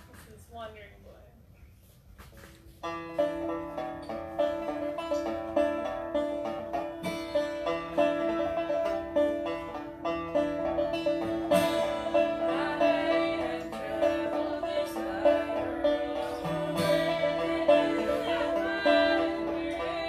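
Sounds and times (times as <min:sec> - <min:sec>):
banjo and acoustic guitar folk music: 0:02.2 - 0:20.0.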